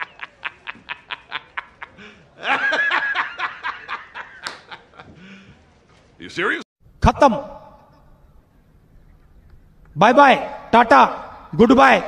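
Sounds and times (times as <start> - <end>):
man laughing hard: 0.0 - 5.2.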